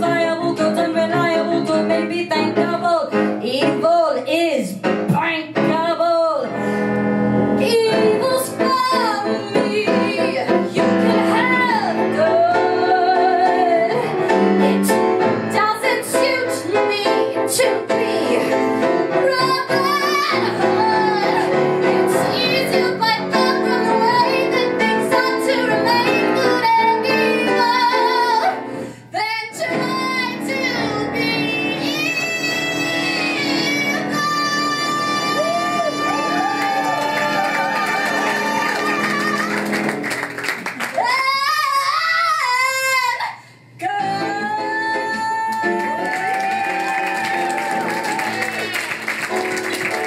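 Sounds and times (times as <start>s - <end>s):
woman singing with accompaniment: 0.0s - 6.6s, 7.6s - 39.8s, 40.8s - 47.5s
instrumental accompaniment: 43.8s - 50.0s.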